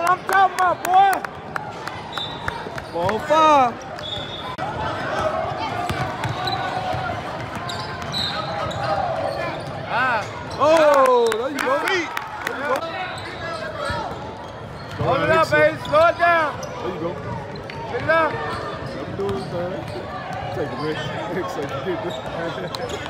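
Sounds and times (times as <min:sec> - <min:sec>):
shouts and murmur of people: 0:00.0 - 0:23.0
sneakers squeaking: 0:02.1 - 0:10.7, 0:13.0 - 0:23.0
ball bouncing on hardwood court: 0:05.8 - 0:07.7.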